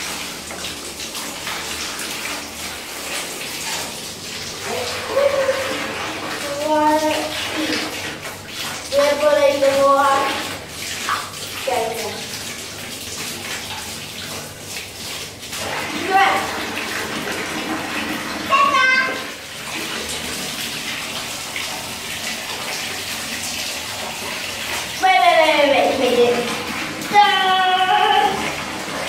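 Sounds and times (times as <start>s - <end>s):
water splashing in shower: 0.0s - 29.0s
child's voice: 6.4s - 7.8s, 8.9s - 10.4s, 11.6s - 12.2s, 15.9s - 16.5s, 18.5s - 19.3s, 25.0s - 26.5s, 27.1s - 28.4s.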